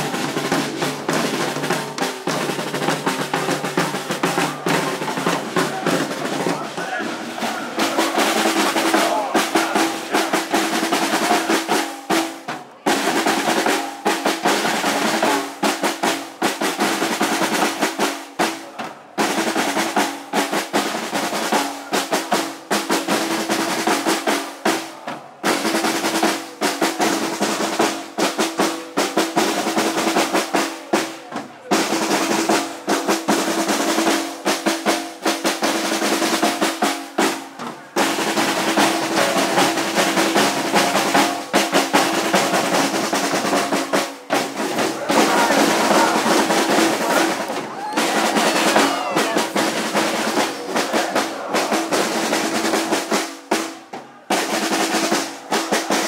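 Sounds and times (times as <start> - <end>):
crowd voices: 0.0 - 56.0
marching snare drums rolling: 0.0 - 56.0.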